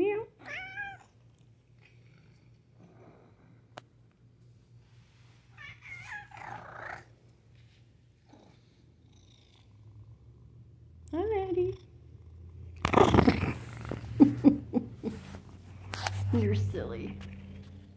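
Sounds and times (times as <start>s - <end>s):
cat meow: 0.4s - 1.1s, 5.6s - 7.1s
cat purring: 5.8s - 7.2s, 8.2s - 17.9s.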